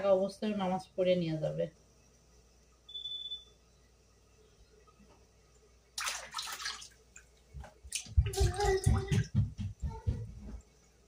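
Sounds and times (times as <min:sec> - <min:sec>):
water splashing and sloshing: 0:05.9 - 0:09.7
knocks in a sink: 0:08.1 - 0:10.4.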